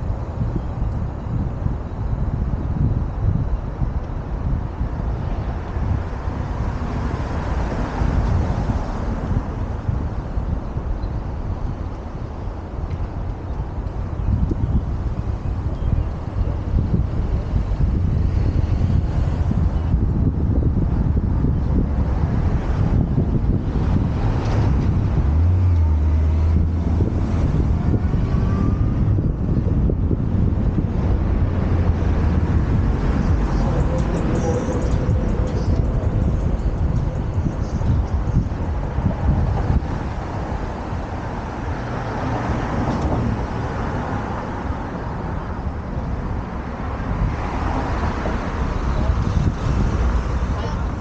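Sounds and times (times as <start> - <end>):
street traffic: 0.0 - 51.0
wind rumbling on microphone: 0.0 - 51.0.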